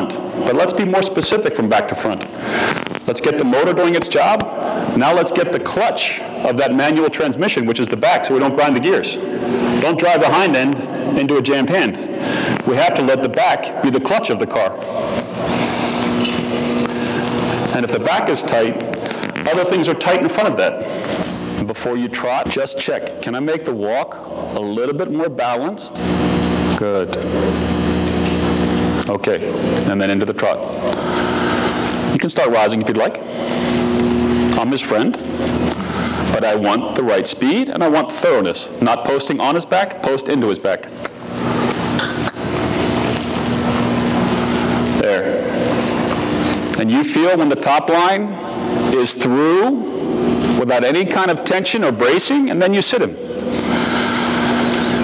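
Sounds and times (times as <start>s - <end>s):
person speaking: 0.0s - 27.8s, 32.0s - 41.0s
electrical hum: 0.0s - 55.0s
person talking: 3.0s - 16.9s, 17.5s - 20.9s, 34.0s - 41.0s.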